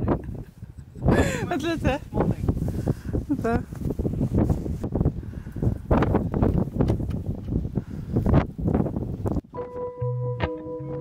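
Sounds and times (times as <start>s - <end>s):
gusty wind buffeting microphone: 0.0s - 9.5s
music with sustained tones and bass: 9.5s - 11.0s.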